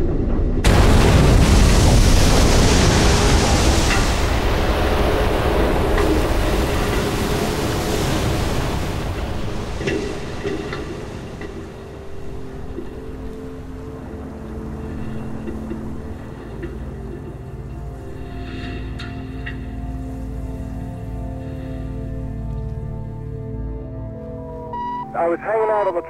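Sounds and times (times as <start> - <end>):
water rushing and spraying: 0.6 - 22.7.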